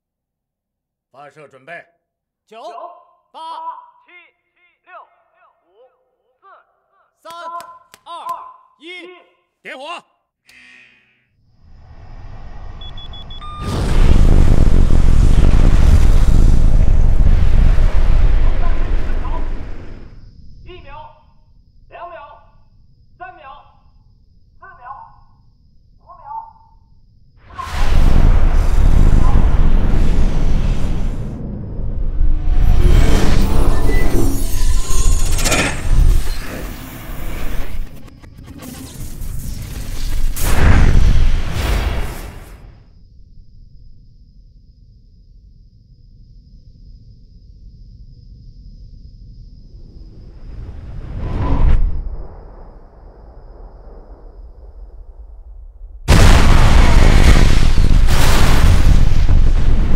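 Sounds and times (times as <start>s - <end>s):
person giving short calls: 2.5s - 11.2s.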